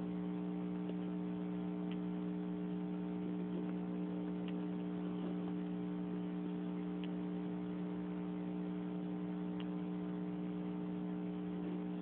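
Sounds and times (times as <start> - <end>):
electrical hum: 0.0 - 12.0
faint ticks: 0.4 - 2.3, 3.3 - 5.8, 6.4 - 7.3, 9.5 - 9.9.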